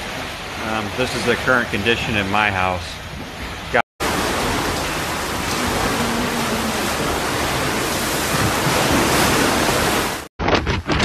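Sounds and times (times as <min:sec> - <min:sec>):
seawater rushing loudly: 0:00.0 - 0:03.0, 0:03.6 - 0:10.3.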